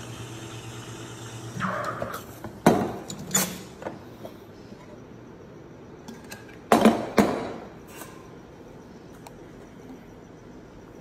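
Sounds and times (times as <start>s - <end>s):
espresso machine hiss: 0.0s - 2.3s
espresso machine humming: 0.0s - 2.3s.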